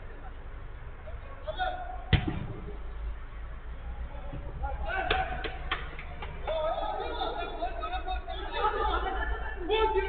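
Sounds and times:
players calling and chattering: 0:00.0 - 0:10.0.

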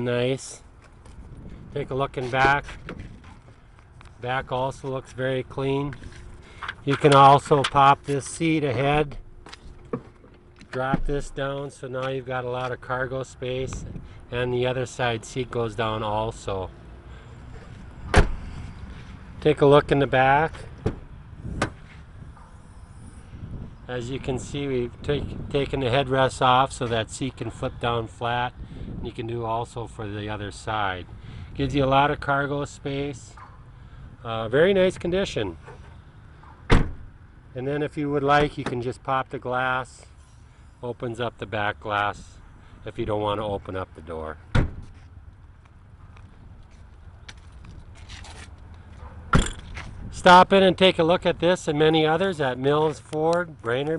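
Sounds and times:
handheld camera scraping: 0:48.0 - 0:48.7.

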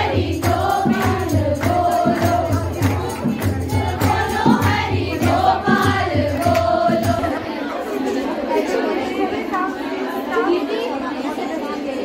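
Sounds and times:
clapping beat: 0:00.0 - 0:07.3
crowd chatter: 0:00.0 - 0:12.0
women singing together: 0:00.0 - 0:12.0.

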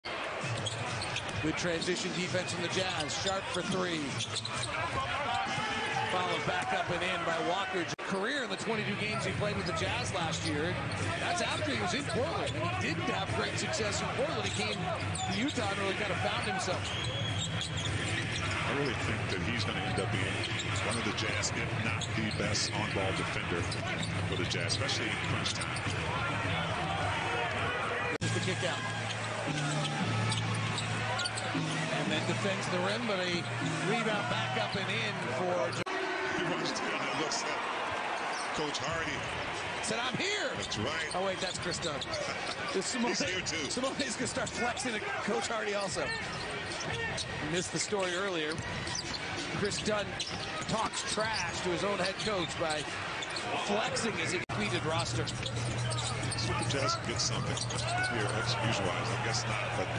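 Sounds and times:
arena crowd noise: 0:00.0 - 0:59.9
sneakers squeaking: 0:00.2 - 0:06.0, 0:09.6 - 0:27.6, 0:28.6 - 0:35.8, 0:37.9 - 0:59.9
arena music: 0:26.1 - 0:36.2.

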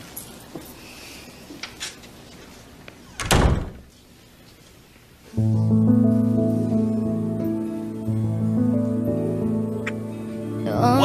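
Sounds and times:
glass door slamming: 0:03.1 - 0:03.9.

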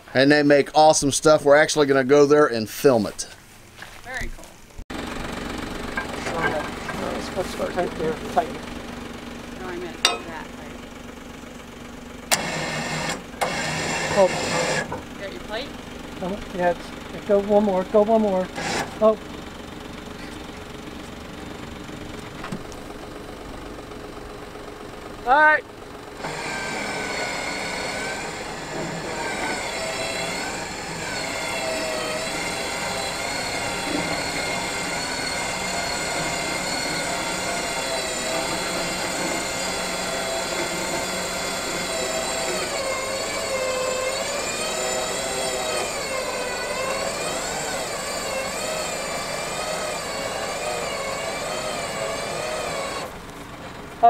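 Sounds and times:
winch motor whining: 0:04.9 - 0:54.0.

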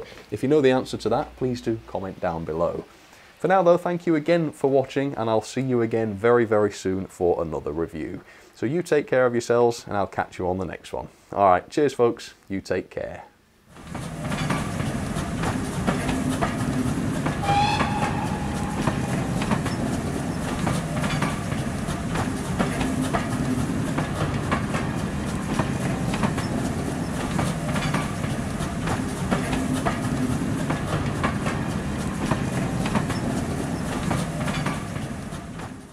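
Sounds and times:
train rumbling on rails: 0:13.8 - 0:35.9
wheels clicking over rail joints: 0:13.8 - 0:35.9
train whistle: 0:17.3 - 0:20.0.

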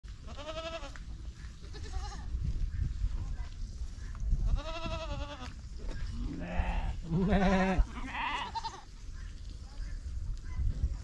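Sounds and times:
goats bleating: 0:00.2 - 0:01.0, 0:01.6 - 0:02.3, 0:04.5 - 0:05.6, 0:06.2 - 0:08.9.

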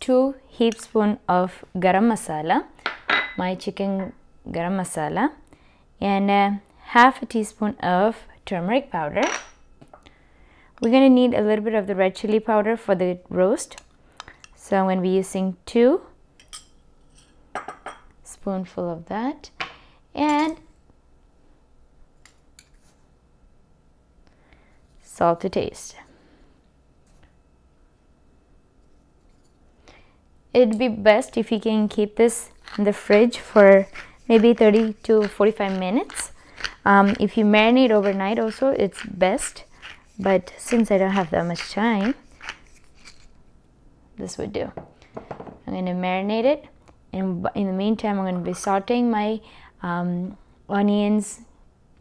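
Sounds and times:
pepper mill grinding: 0:31.8 - 0:43.5.

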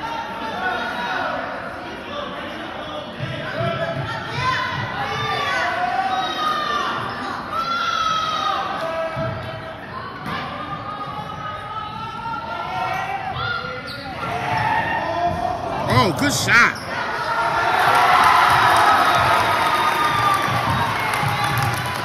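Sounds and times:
shoes squeaking on gym floor: 0:13.8 - 0:14.6
voices calling out: 0:15.8 - 0:17.2.

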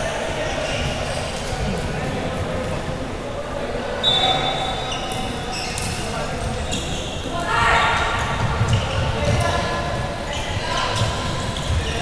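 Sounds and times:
shoes squeaking on floor: 0:04.0 - 0:07.4, 0:08.1 - 0:12.0.

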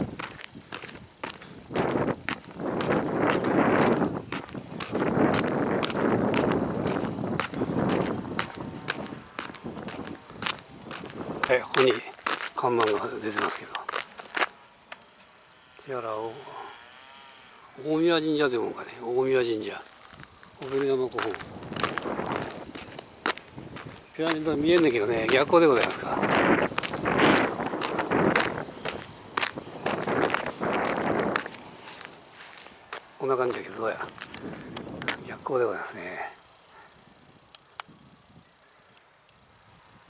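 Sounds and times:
footsteps on asphalt: 0:00.0 - 0:15.1, 0:19.6 - 0:35.4.

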